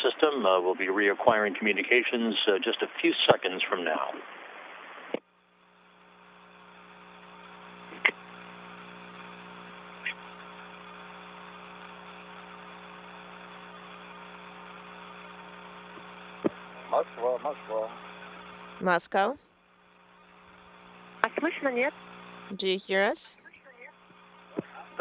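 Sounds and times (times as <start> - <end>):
electrical hum with tones: 0.0 - 25.0
radio line hiss: 0.0 - 25.0.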